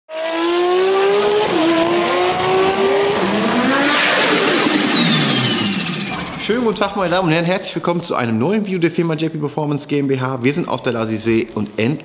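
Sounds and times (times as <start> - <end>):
sports car engine revving: 0.1 - 6.7.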